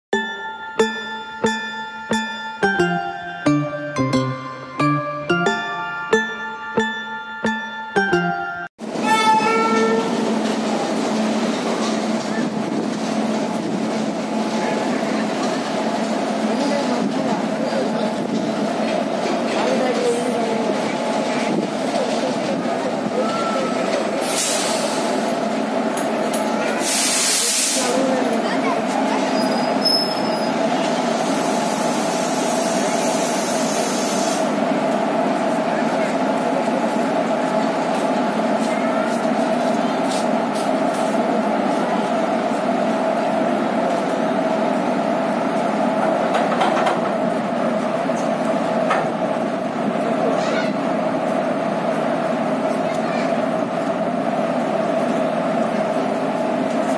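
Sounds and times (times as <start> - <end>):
electric locomotive rumbling: 0.2 - 56.9.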